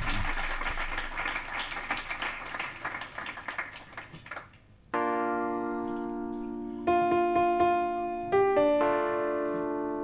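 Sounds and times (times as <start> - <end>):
audience applauding: 0.0 - 4.7.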